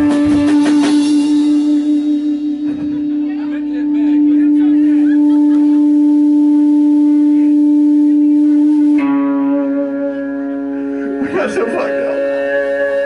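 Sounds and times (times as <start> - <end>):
electric guitar ringing notes: 0.0 - 13.0.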